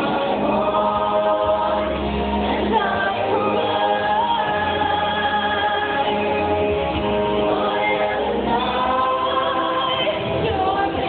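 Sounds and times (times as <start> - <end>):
mixed choir singing: 0.0 - 11.0.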